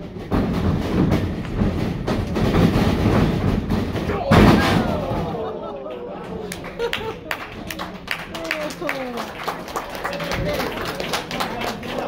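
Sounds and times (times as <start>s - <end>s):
live audience noise: 4.1s - 12.0s.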